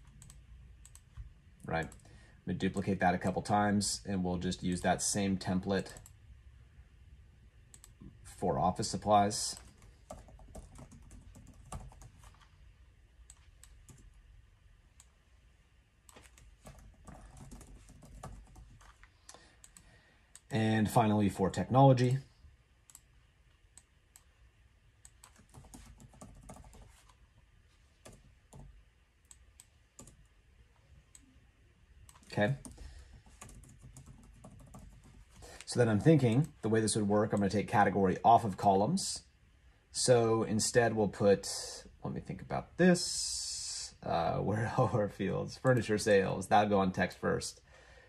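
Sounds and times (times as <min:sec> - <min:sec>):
faint keyboard typing: 0:00.0 - 0:03.6, 0:04.4 - 0:06.2, 0:07.7 - 0:14.3, 0:16.0 - 0:22.2, 0:22.8 - 0:24.4, 0:25.0 - 0:30.4, 0:32.0 - 0:36.6.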